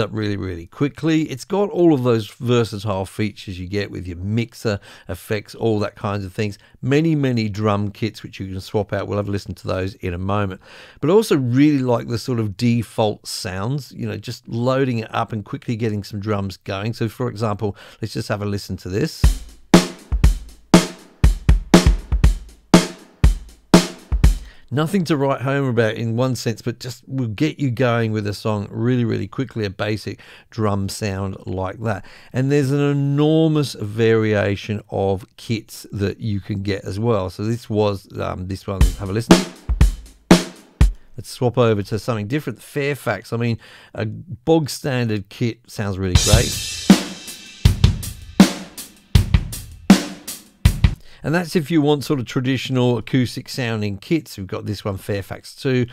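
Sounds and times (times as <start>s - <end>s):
snare drum: 19.2s - 24.5s, 38.8s - 41.0s, 46.2s - 51.0s
light hi-hat: 19.2s - 24.6s, 38.8s - 41.1s, 46.2s - 51.0s
kick drum: 19.3s - 24.5s, 38.8s - 41.0s, 47.7s - 50.1s, 50.7s - 51.0s
cymbal ringing: 46.2s - 49.1s.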